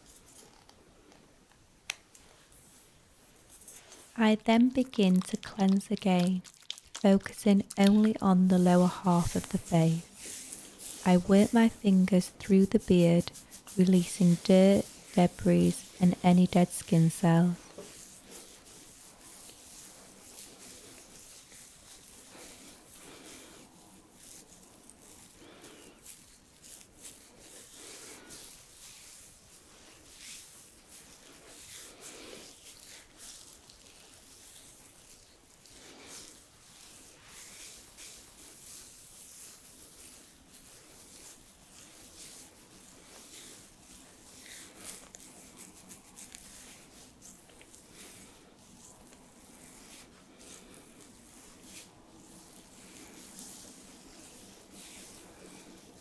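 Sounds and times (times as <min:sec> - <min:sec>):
hands rubbing beard hair: 0:00.0 - 0:00.7, 0:01.9 - 0:56.0.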